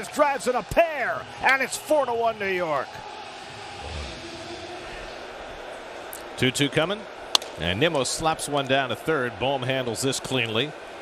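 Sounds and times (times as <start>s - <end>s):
ballpark background noise: 0.0s - 11.0s.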